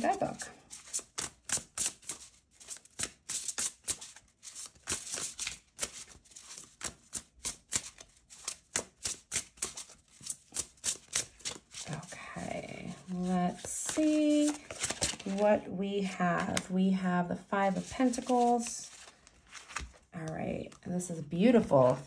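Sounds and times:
cards being shuffled: 0.7 - 12.2, 12.9 - 15.4, 17.8 - 20.1.

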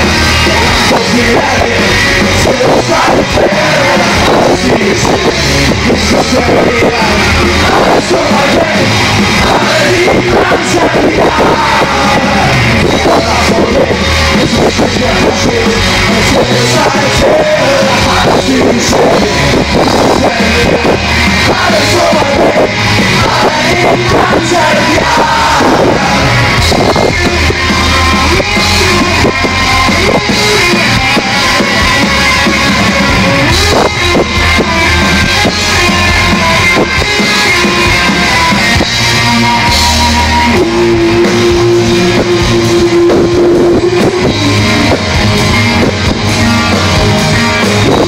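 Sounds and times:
drum kit: 0.0 - 48.0
electric guitars: 0.0 - 48.0
rock band playing live: 0.0 - 48.0.

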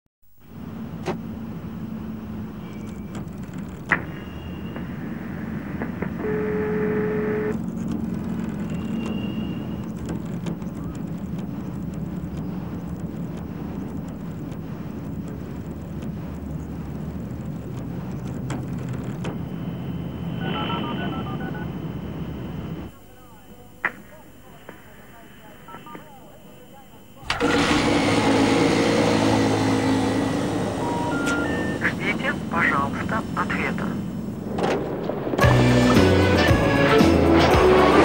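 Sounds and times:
street traffic noise: 0.2 - 23.0, 27.2 - 38.0
telephone tone: 2.6 - 11.6, 19.2 - 28.3, 29.8 - 34.4
telephone dialing beeps: 6.1 - 7.6, 19.5 - 22.9, 25.3 - 27.5, 30.8 - 33.1.

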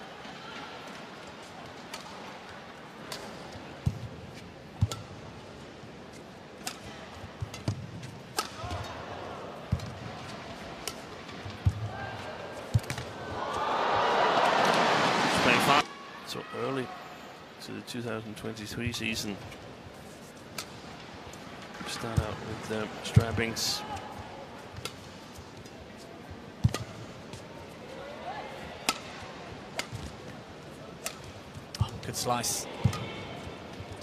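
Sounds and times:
racket striking shuttlecock: 7.5 - 8.8, 26.6 - 27.0, 28.8 - 29.2
crowd cheering and applauding: 13.4 - 15.8.

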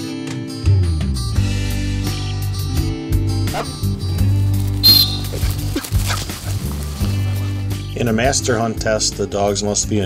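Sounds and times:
short shrill note: 4.8 - 5.4
dog yipping and whining: 4.8 - 6.6.

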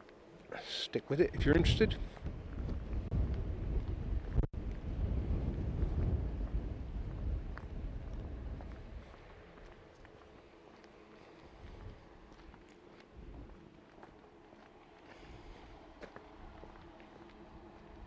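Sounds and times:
wind buffeting microphone: 1.2 - 10.2, 13.1 - 13.7.

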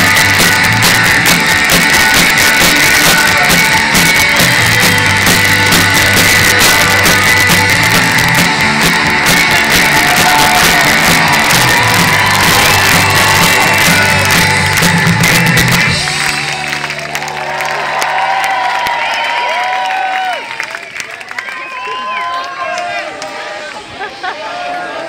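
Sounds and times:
live rock band playing: 0.0 - 17.4
crowd cheering and whooping: 0.0 - 25.0.

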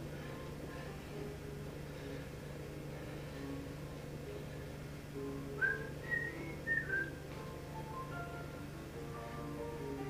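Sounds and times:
piano music: 0.0 - 10.0
steady low hum: 0.0 - 10.0
person whistling high notes: 5.6 - 7.2.

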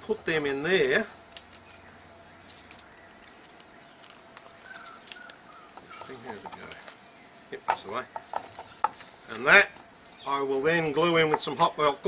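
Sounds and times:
faint birds calling: 0.0 - 12.0.

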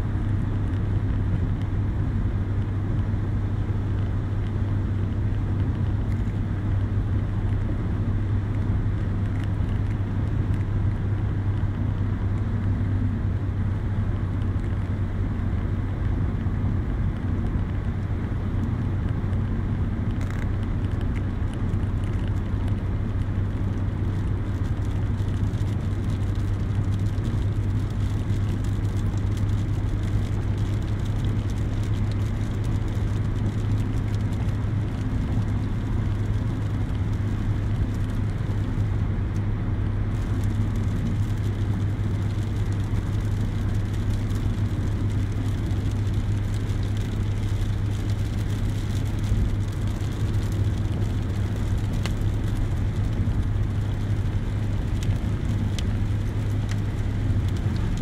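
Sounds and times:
car engine and road drone: 0.0 - 58.0.

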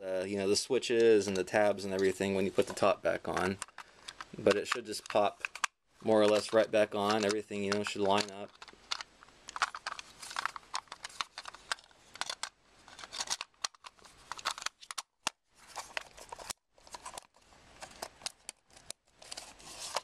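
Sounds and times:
plastic clicks and scrapes: 2.0 - 20.0.

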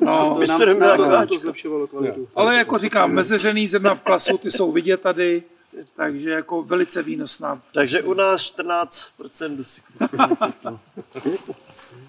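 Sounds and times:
men murmuring: 0.0 - 4.8, 9.2 - 12.0
man laughing: 4.1 - 4.4, 9.9 - 11.7.

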